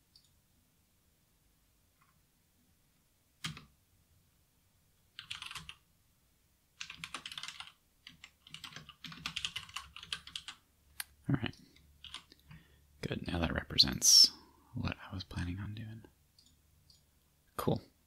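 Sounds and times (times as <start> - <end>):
typing on computer keyboard: 3.4 - 3.7, 5.1 - 5.8, 6.8 - 10.6, 11.8 - 12.5.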